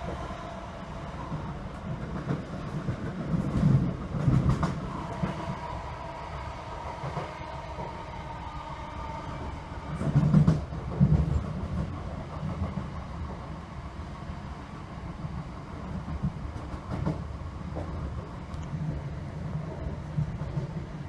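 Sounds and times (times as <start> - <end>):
train wheels rumbling on rail: 0.0 - 21.0.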